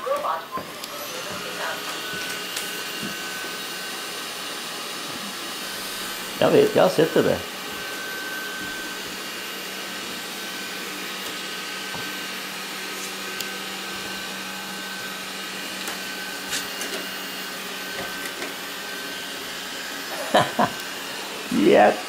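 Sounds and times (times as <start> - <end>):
robot vacuum cleaner whirring: 0.0 - 22.0.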